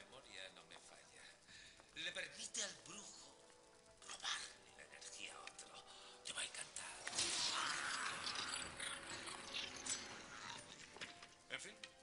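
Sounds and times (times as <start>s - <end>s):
irregular shifting magic noise: 6.8s - 11.1s.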